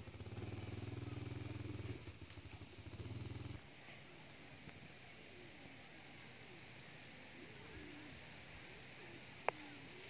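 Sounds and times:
dog growling low: 0:02.8 - 0:03.6.

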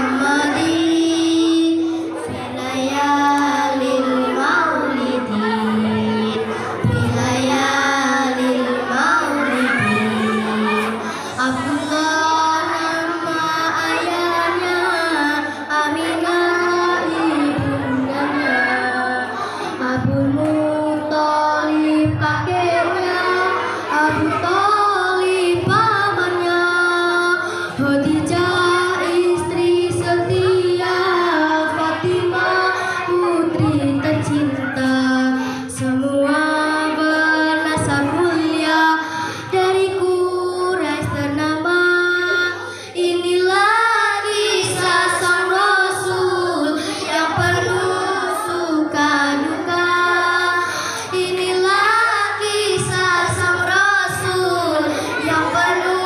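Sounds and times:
girls singing into a microphone: 0:00.0 - 0:56.0.

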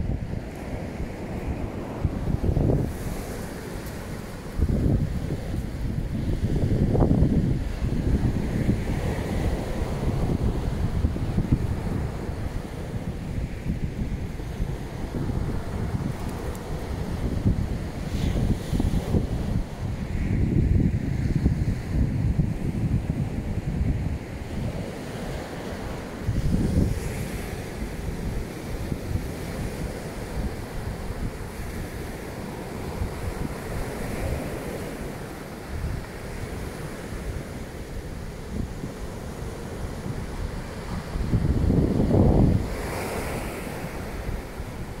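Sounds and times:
surf breaking on beach: 0:00.0 - 0:45.0
wind rumbling on microphone: 0:00.0 - 0:45.0.

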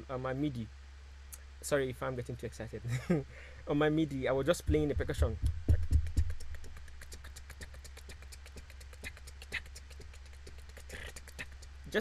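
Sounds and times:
low hum: 0:00.0 - 0:12.0
fast ticking percussion: 0:04.4 - 0:12.0.

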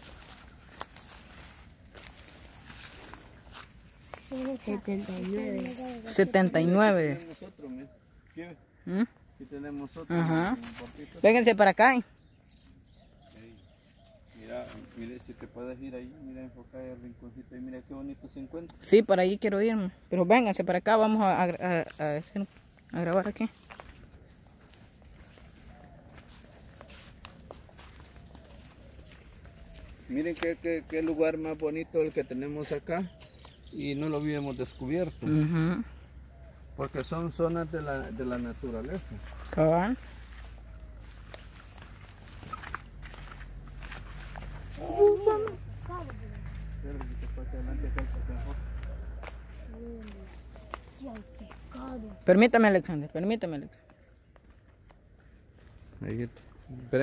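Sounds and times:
footsteps on mud and grass: 0:00.0 - 0:07.5, 0:10.2 - 0:11.4, 0:21.4 - 0:34.2, 0:36.4 - 0:52.3, 0:53.8 - 0:56.7.

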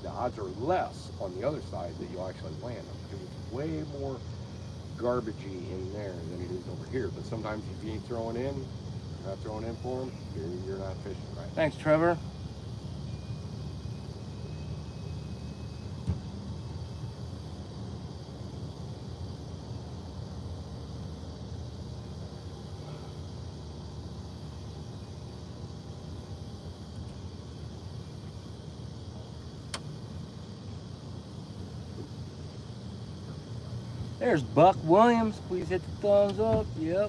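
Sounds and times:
low outdoor rumble: 0:00.0 - 0:37.0
sharp click: 0:29.7 - 0:29.9.

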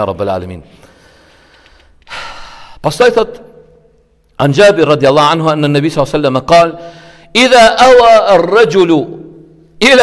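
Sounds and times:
man breathing in: 0:00.8 - 0:02.8, 0:06.8 - 0:07.3
man speaking: 0:02.8 - 0:03.8, 0:04.4 - 0:10.0.

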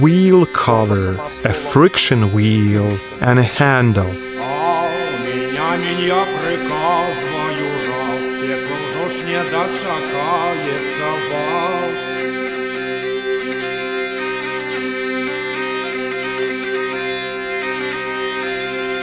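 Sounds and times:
man singing: 0:00.0 - 0:12.2
hurdy-gurdy playing: 0:00.0 - 0:19.0.

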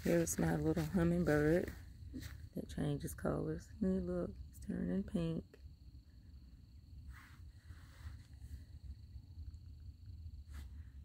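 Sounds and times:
low steady rumble: 0:00.0 - 0:11.0
soft short rustle: 0:07.1 - 0:08.8, 0:10.4 - 0:11.0.

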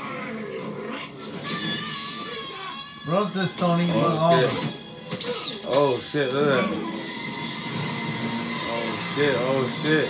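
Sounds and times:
cartoon sound effects: 0:04.0 - 0:07.0.

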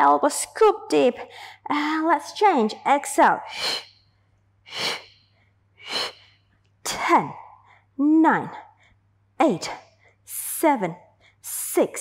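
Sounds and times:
woman's sharp breathy exhales: 0:03.5 - 0:04.0, 0:04.7 - 0:06.4.

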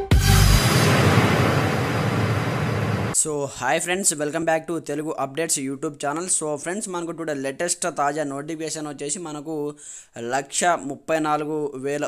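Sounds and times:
explosion rushing noise: 0:00.1 - 0:03.2.

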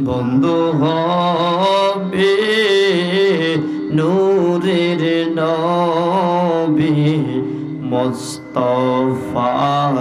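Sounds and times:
man singing into microphone: 0:00.0 - 0:10.0.

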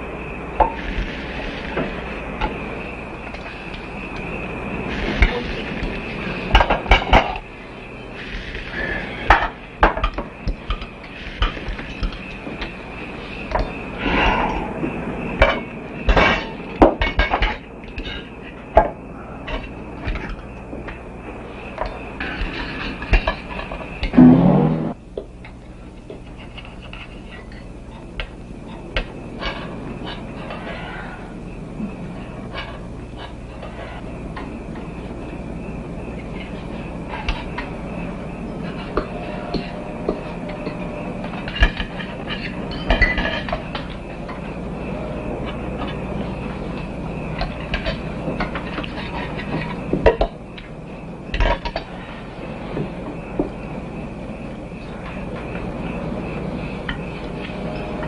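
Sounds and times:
cutlery clinking on plates: 0:41.4 - 0:43.9.

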